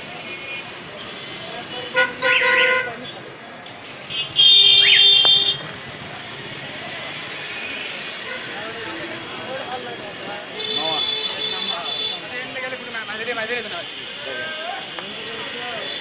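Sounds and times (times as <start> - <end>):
steady traffic noise: 0.0 - 16.0
high-pitched horn blaring: 4.4 - 5.7
short vehicle horn: 4.4 - 5.7.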